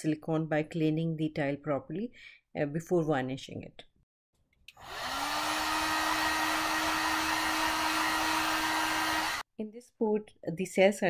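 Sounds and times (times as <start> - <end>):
heat gun fan blowing: 4.7 - 9.4.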